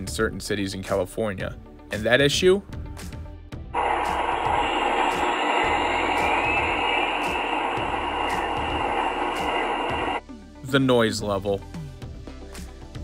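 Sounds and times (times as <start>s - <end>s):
locomotive turbine roaring: 3.8s - 10.2s.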